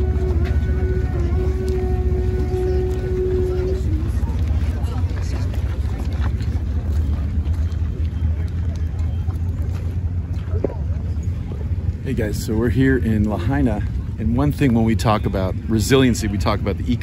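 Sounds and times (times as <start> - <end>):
faint crowd voices: 0.0 - 17.0.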